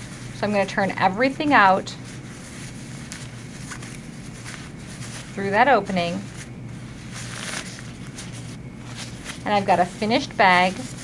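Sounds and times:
fabric rustling: 0.0s - 11.0s
room hiss: 0.0s - 11.0s
soft fabric swishes: 0.0s - 11.0s.

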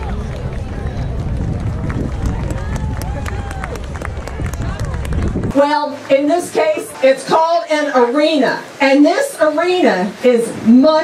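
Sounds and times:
wind buffeting microphone: 0.0s - 5.7s
crowd chatter: 0.0s - 11.0s.

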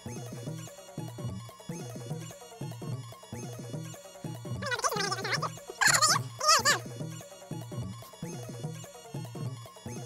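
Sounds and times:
wavering high cries: 4.6s - 6.8s.

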